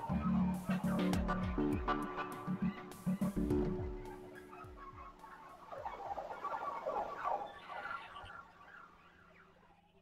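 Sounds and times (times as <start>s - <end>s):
flock of birds chirping: 0.0s - 10.0s.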